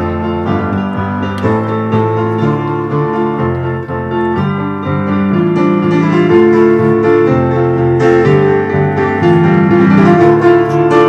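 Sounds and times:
electric piano chords: 0.0s - 11.0s.

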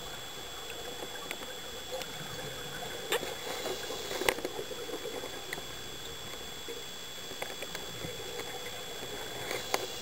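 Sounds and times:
faint clicks and crackles: 0.0s - 10.0s
underwater hiss: 3.2s - 4.8s.

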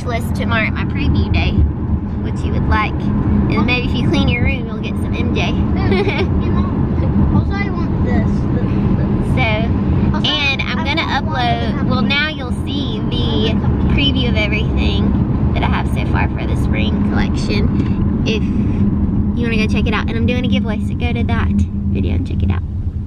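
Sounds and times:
woman talking: 0.0s - 1.6s, 2.2s - 6.3s, 9.3s - 18.8s, 19.4s - 22.6s
car cabin rumble: 0.0s - 23.0s.

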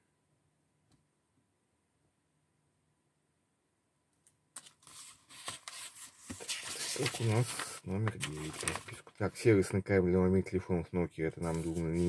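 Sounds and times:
book pages rustling: 4.6s - 9.4s, 11.4s - 12.0s.

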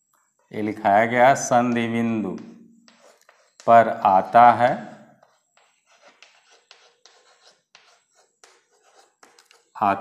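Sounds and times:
chalk scratching on chalkboard: 1.6s - 9.8s.

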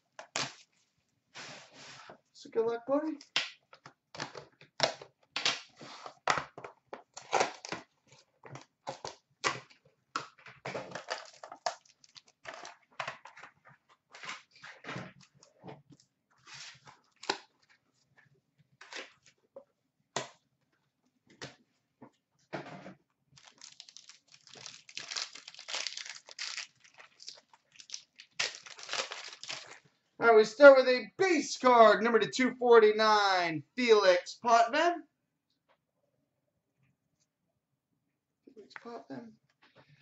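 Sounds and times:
plastic wrapper crinkling and tearing: 7.1s - 9.6s, 10.9s - 13.4s, 23.4s - 29.8s
foil pack rustling: 23.4s - 29.8s.

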